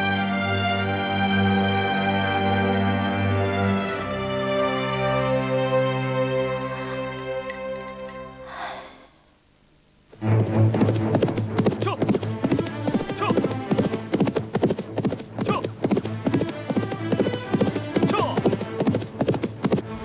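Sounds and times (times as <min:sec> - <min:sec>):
background music with low drone: 0:00.0 - 0:09.0, 0:10.2 - 0:20.0
horse hoofbeats galloping: 0:10.2 - 0:20.0.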